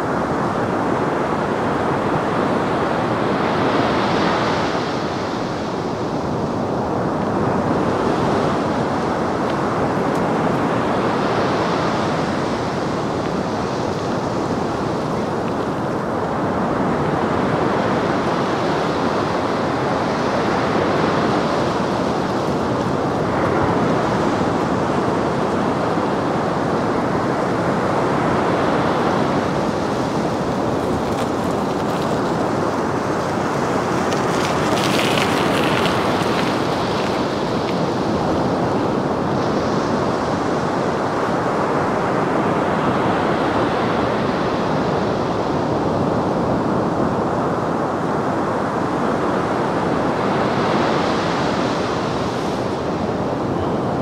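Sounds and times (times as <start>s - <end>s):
waves breaking on beach: 0.0s - 54.0s.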